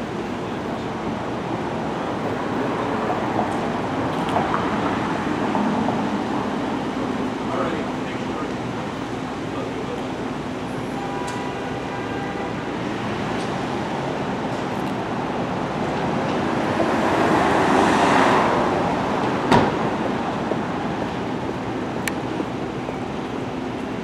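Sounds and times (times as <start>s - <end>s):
passing cars: 0.0s - 24.0s.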